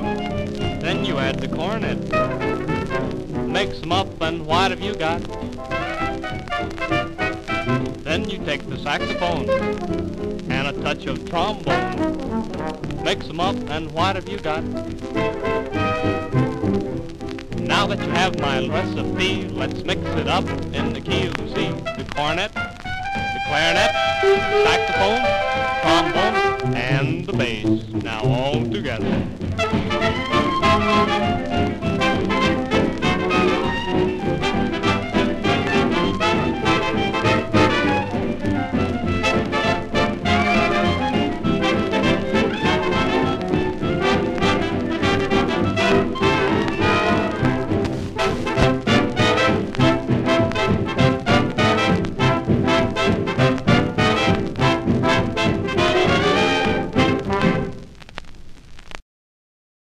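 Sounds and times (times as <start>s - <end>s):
swing dance band playing: 0.0s - 57.8s
record surface hiss: 0.0s - 59.0s.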